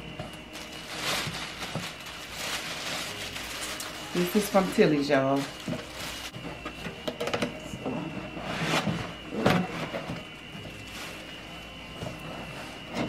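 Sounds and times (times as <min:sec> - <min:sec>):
tissue paper rustling: 0:00.0 - 0:06.4, 0:10.6 - 0:13.0.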